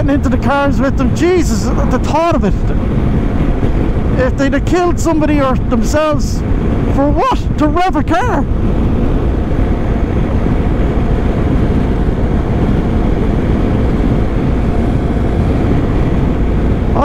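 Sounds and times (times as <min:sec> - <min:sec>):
motorcycle engine drone: 0:00.0 - 0:17.0
wind rush: 0:00.0 - 0:17.0.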